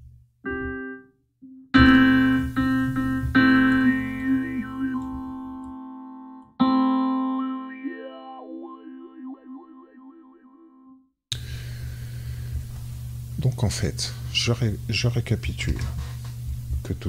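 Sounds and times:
sustained synth keyboard chords: 0.4 - 11.2.

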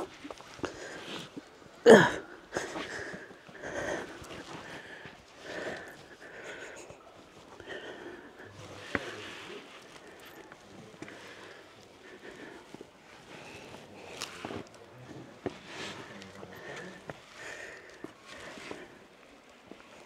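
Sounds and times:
person breathing hard: 1.9 - 14.6, 15.6 - 19.1.

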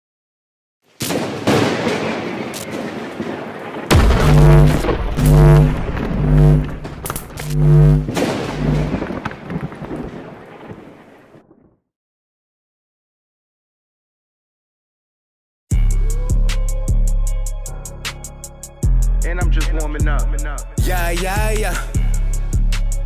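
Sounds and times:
heavy bass rumble: 3.9 - 9.0
low held notes: 3.9 - 9.0
deep boom: 3.9 - 9.3
sudden crash: 3.9 - 9.7.

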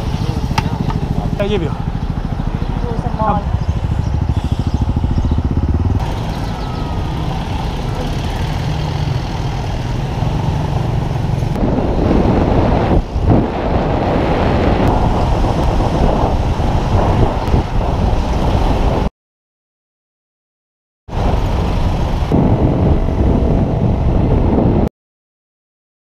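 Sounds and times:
motorcycle and scooter engines: 0.0 - 19.1, 21.1 - 24.8.

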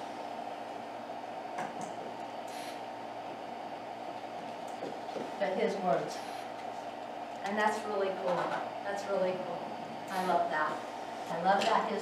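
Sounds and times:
steady room hiss: 0.0 - 12.0.

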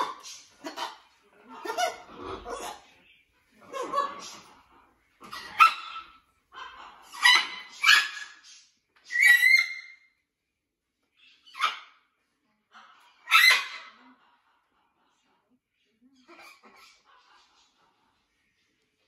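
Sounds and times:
macaws squawking: 0.0 - 3.0.

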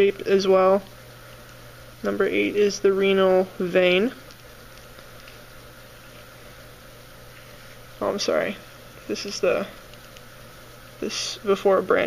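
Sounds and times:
faint constant hum: 0.0 - 12.0.

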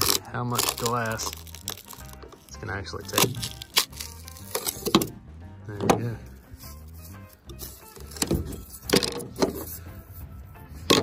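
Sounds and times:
fiberglass deck being pried up: 0.0 - 5.2, 7.6 - 9.7
sharp cracks and knocks: 3.1 - 5.2.

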